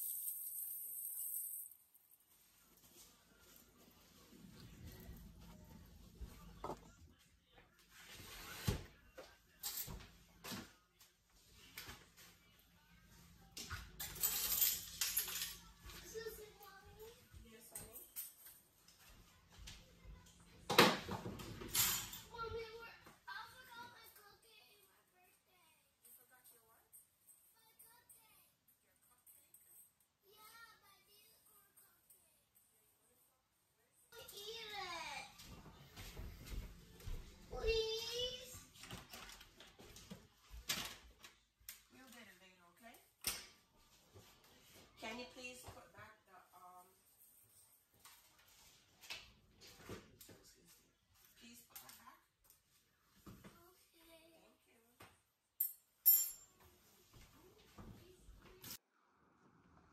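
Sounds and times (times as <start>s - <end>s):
small objects clinking on countertop: 55.6s - 56.6s.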